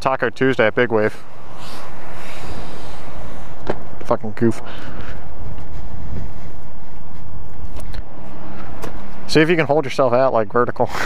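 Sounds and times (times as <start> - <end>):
wind rushing on microphone: 0.2 - 11.0.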